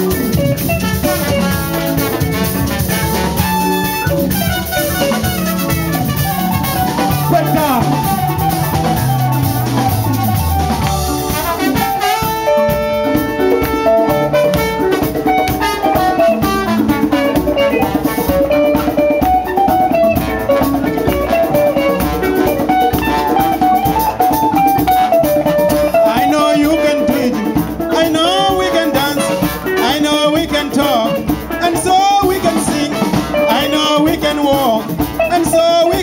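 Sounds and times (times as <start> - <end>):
held melody line: 0.0 - 36.0
live dance band playing: 0.0 - 36.0.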